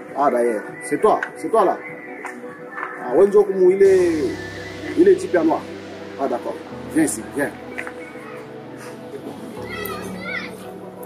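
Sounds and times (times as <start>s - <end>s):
background music: 0.0s - 11.0s
children calling out at play: 9.6s - 10.7s.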